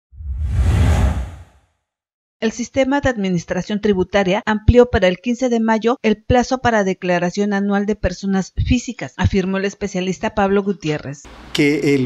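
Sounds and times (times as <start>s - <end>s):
whoosh over deep rumble: 0.2s - 1.6s.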